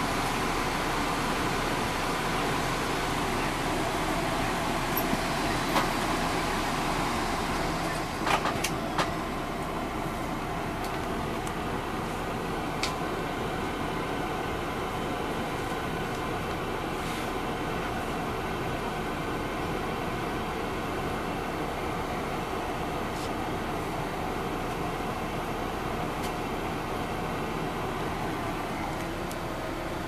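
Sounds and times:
bus diesel engine idling: 0.0 - 30.0.

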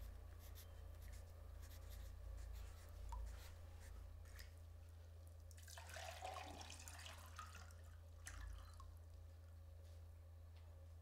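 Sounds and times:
pencil scratching on paper: 0.0 - 3.4
faint steady low hum: 0.0 - 11.0.

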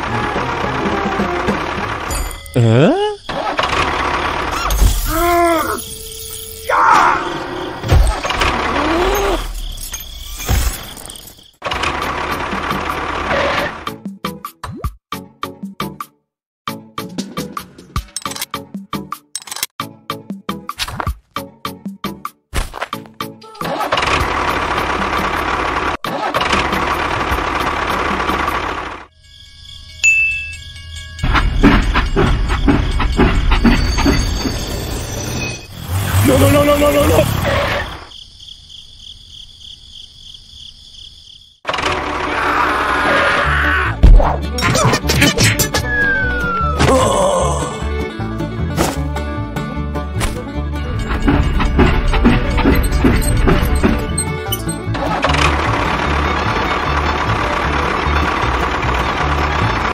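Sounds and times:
tractor engine starting and running: 0.0 - 2.6, 3.3 - 5.1, 7.4 - 9.0, 11.6 - 14.0, 23.6 - 29.1, 30.4 - 35.0, 41.7 - 42.7, 48.0 - 59.9
toy steam locomotive chuffing: 52.0 - 59.9.

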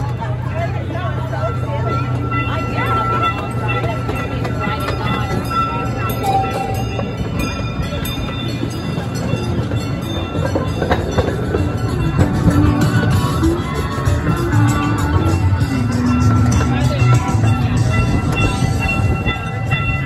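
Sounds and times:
people's voices: 0.0 - 20.0
train running with low hum: 0.0 - 20.0.

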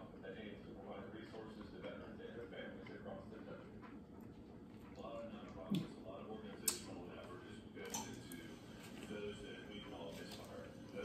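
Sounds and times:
faint background talk: 0.0 - 11.0
man chewing sandwich: 1.3 - 6.0.

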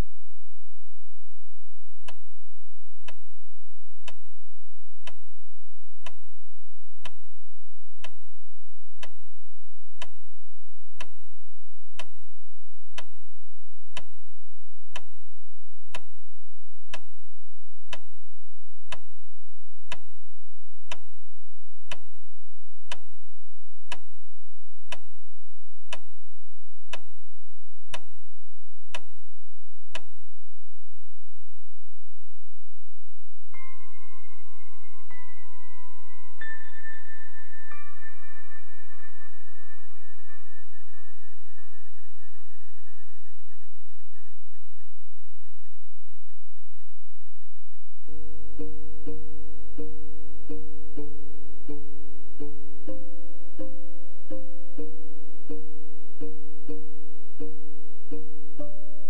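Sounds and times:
faint low hum: 0.0 - 59.0
clock ticking: 3.0 - 3.3, 4.0 - 4.3, 5.0 - 5.3, 5.9 - 7.3, 7.9 - 8.3, 8.9 - 9.3, 9.9 - 10.3, 10.9 - 11.3, 11.9 - 12.3, 12.9 - 13.3, 13.9 - 14.3, 14.9 - 15.3, 15.9 - 16.3, 16.9 - 17.2, 17.9 - 18.2, 18.9 - 19.2, 19.9 - 20.2, 20.9 - 21.2, 21.8 - 22.2, 22.9 - 23.2, 23.9 - 24.2, 24.9 - 25.2, 25.9 - 26.2, 26.9 - 27.2, 27.9 - 28.3, 28.9 - 29.2, 29.9 - 30.2, 48.0 - 59.0.

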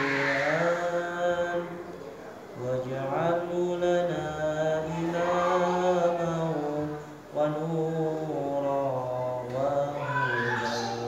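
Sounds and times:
man chanting a recitation: 0.0 - 11.0.

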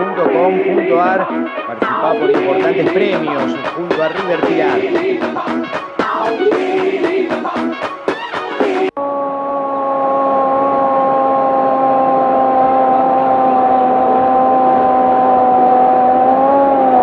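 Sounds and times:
person holding long shouted note: 9.0 - 17.0.

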